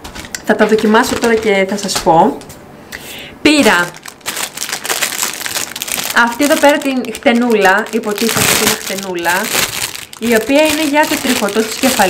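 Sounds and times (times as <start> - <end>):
plastic bag crinkling: 0.6 - 1.6, 3.5 - 12.0.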